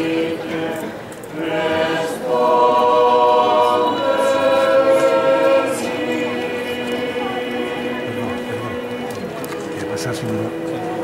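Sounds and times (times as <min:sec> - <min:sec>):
group singing a hymn: 0:00.0 - 0:11.0.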